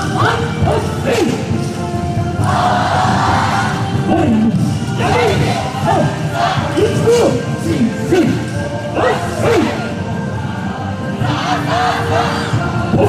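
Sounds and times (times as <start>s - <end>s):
loud dance music: 0.0s - 13.0s.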